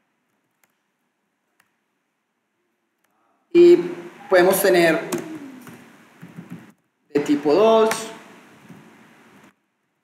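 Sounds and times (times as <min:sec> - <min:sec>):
person speaking: 0:03.5 - 0:08.4.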